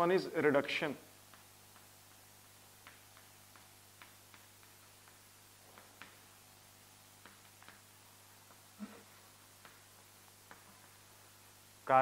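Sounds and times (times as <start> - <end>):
low steady hum: 0.0 - 12.0
chalk writing on chalkboard: 1.2 - 6.3, 7.1 - 8.0.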